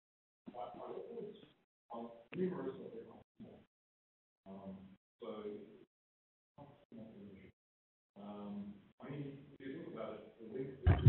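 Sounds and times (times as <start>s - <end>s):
faint muffled speech: 0.5s - 3.6s.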